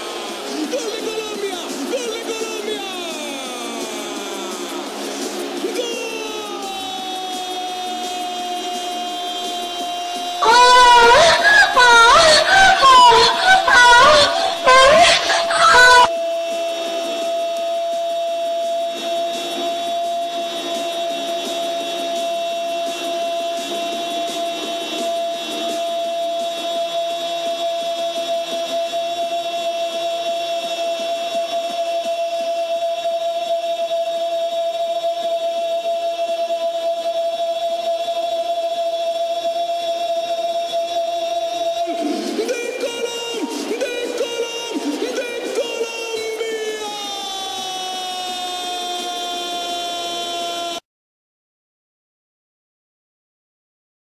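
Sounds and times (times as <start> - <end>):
commentator's drawn-out goal call: 10.4 - 16.1.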